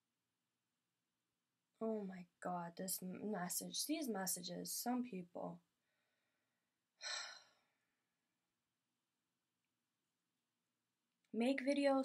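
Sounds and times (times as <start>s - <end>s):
woman sighing: 7.0s - 7.6s.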